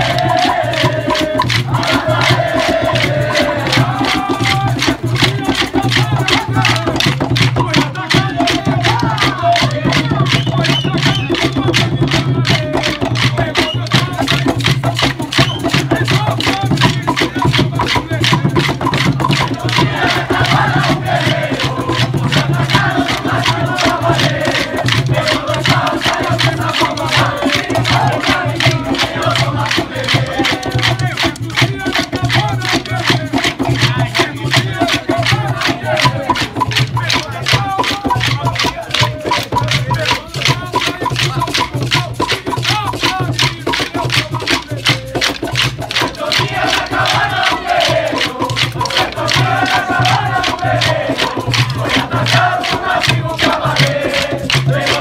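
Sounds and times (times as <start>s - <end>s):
drums beating steady rhythm: 0.0s - 55.0s
group singing: 0.0s - 55.0s
wooden sticks clacking: 0.0s - 55.0s.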